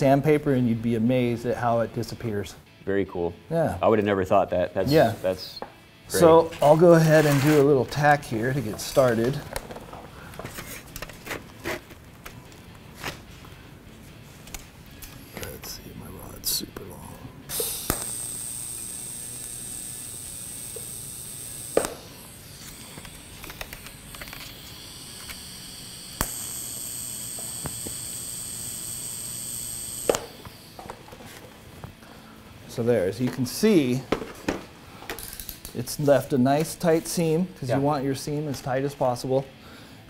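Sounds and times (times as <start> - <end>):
welding arc hissing and whining: 17.4 - 31.2.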